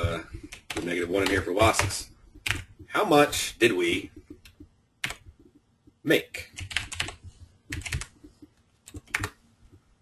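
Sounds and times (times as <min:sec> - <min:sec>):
computer keyboard key clicks: 0:06.6 - 0:08.1, 0:08.9 - 0:09.4.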